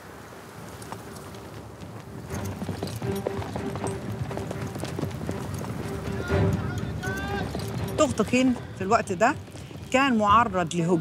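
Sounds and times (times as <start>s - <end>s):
horses galloping on sand: 0.0s - 11.0s
background music held note: 3.0s - 8.6s.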